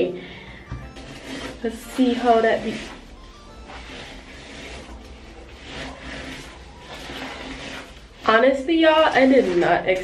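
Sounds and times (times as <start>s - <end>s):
brush swishing through wet hair: 1.0s - 10.0s.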